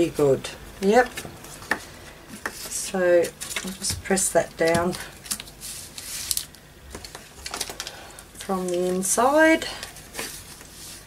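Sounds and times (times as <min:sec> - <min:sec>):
paper rustling: 0:02.4 - 0:08.0, 0:09.8 - 0:11.0.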